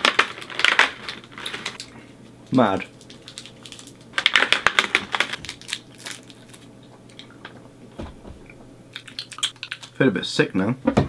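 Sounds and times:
wrapper crinkling: 0:00.0 - 0:07.4, 0:09.0 - 0:10.0.

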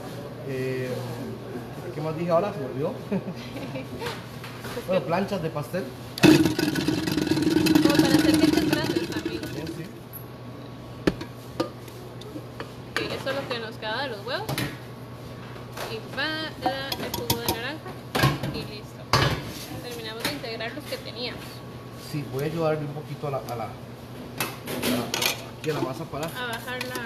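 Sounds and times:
utensils clinking against a bowl: 0:24.8 - 0:27.0.

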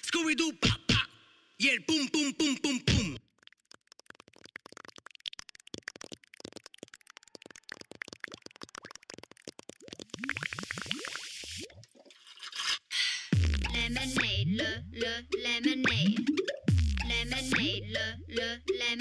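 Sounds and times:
rapid clicking sound effects: 0:03.2 - 0:11.2
heavy bass beat: 0:13.4 - 0:19.0.

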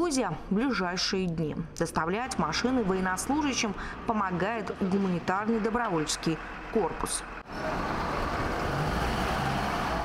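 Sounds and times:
highway road and wind noise: 0:02.2 - 0:10.0
van driving alongside: 0:02.2 - 0:10.0.

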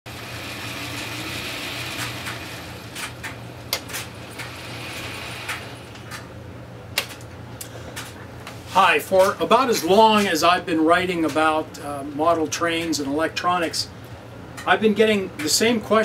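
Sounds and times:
model train motor whirring: 0:00.1 - 0:03.2, 0:04.0 - 0:06.0.

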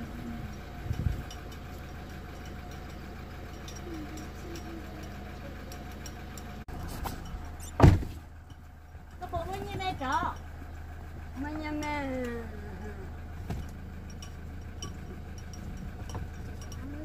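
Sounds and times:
car engine idling: 0:00.0 - 0:17.0
loud thump: 0:07.8 - 0:08.2.

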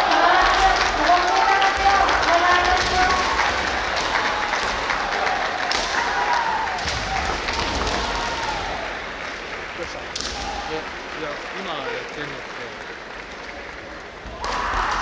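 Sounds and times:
crowd noise: 0:00.0 - 0:15.0.

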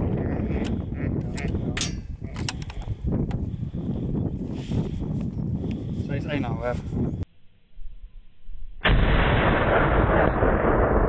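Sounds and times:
wind buffeting microphone: 0:00.0 - 0:07.3.

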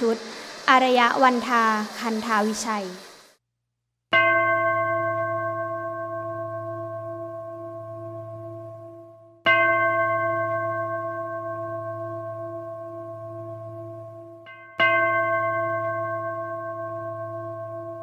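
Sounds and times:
deep bell ringing: 0:04.2 - 0:18.0.

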